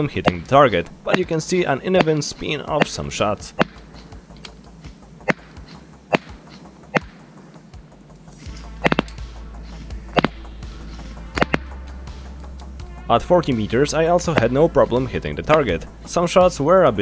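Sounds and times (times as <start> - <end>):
airsoft rifle shots: 5.2 - 7.2, 11.4 - 11.7.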